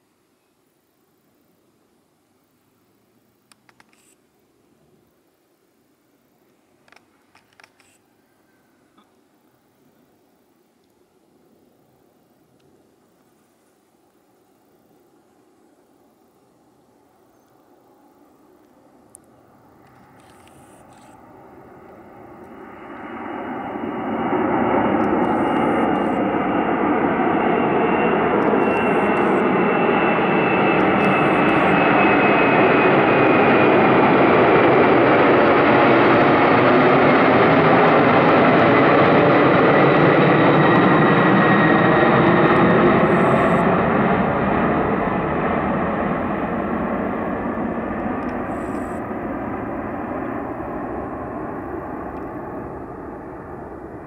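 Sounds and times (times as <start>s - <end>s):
jet engines at climb power: 16.6s - 54.0s.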